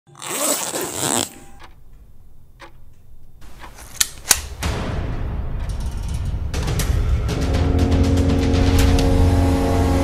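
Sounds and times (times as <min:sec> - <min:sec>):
zipper being pulled: 0:00.2 - 0:01.5.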